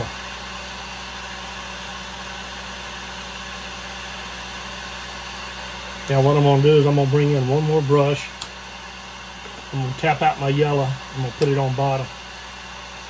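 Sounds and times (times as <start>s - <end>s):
blower machine hissing air: 0.0s - 13.0s.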